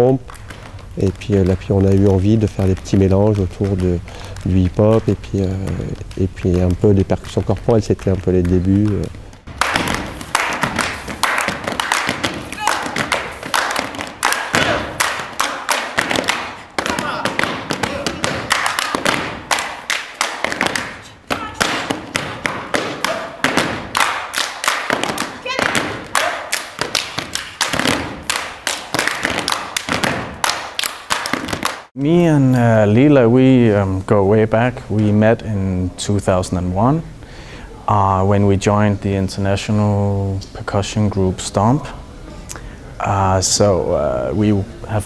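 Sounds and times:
body percussion slaps: 0.2 - 31.9
feet stamping on wooden stage: 0.3 - 31.8.

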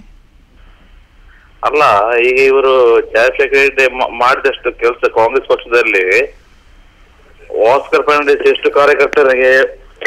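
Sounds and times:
person speaking over telephone line: 1.6 - 6.3, 7.4 - 10.0.

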